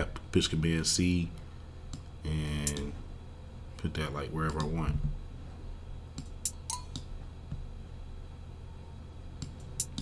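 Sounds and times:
low steady hum: 0:00.0 - 0:10.0
keyboard and mouse clicks: 0:06.1 - 0:07.2, 0:09.4 - 0:10.0.

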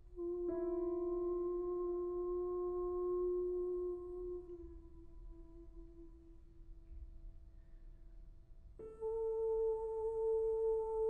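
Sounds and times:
soprano holding a long note: 0:00.0 - 0:06.8, 0:08.8 - 0:11.0.

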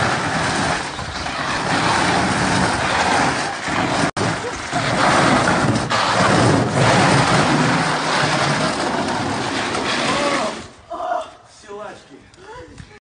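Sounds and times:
refrigerator scraping on asphalt: 0:00.0 - 0:10.8.

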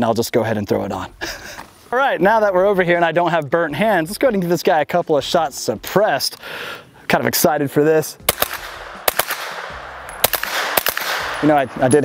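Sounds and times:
suppressed gunshots: 0:08.3 - 0:11.8.

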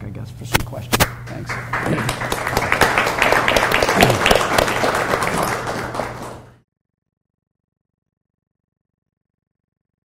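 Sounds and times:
audience applauding: 0:01.3 - 0:06.6.

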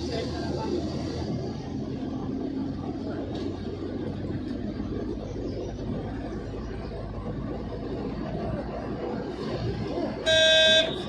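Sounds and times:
moving vehicle road noise: 0:00.0 - 0:11.0
vehicle horn honk: 0:10.3 - 0:11.0.

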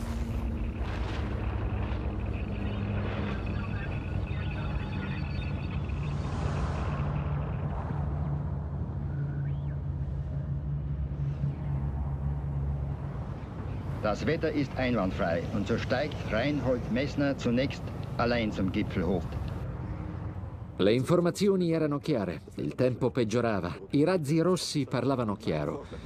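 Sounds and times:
low rumble: 0:00.0 - 0:21.0
low hum: 0:00.0 - 0:26.0.

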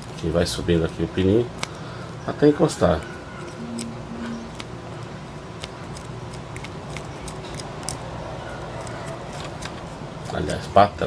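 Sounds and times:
steady background noise: 0:00.0 - 0:11.0
small clicks and fingertip scraping: 0:05.6 - 0:08.0.

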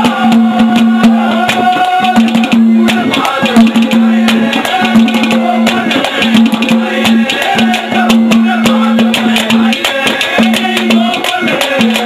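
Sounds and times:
fast hand-drum strokes: 0:00.0 - 0:12.0
folk melody line: 0:00.0 - 0:12.0.

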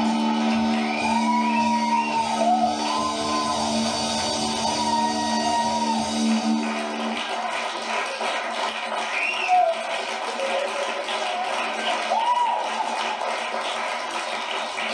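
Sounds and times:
audience applause and cheering: 0:00.0 - 0:14.9.

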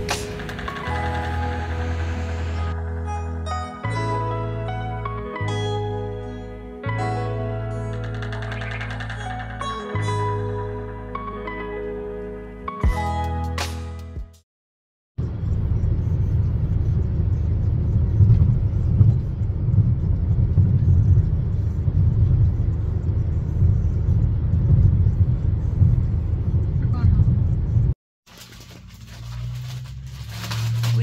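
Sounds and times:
road rumble inside car: 0:15.2 - 0:31.0.

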